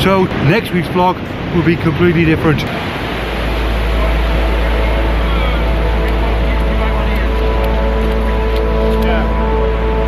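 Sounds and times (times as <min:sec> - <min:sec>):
surf washing on beach: 0:00.0 - 0:10.0
soft background music: 0:03.3 - 0:10.0.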